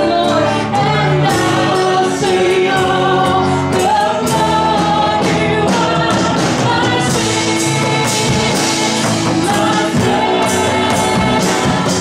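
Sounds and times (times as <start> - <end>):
band playing: 0.0 - 12.0
several voices singing: 0.0 - 12.0
steady drum beat: 0.0 - 12.0.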